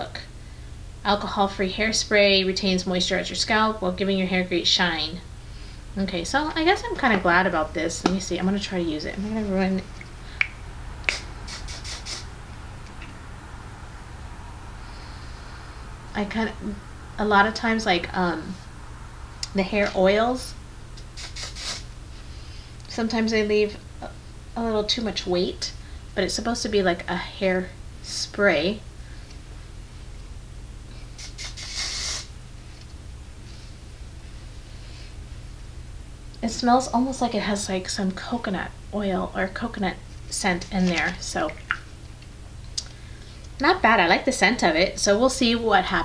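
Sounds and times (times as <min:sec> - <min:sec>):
spray can hissing: 0:11.0 - 0:12.3, 0:21.2 - 0:21.8, 0:31.2 - 0:32.3.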